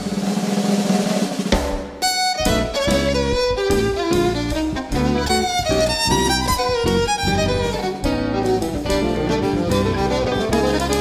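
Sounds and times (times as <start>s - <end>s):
sharp accented drum hit: 0.0s - 4.4s
drum roll: 0.0s - 11.0s.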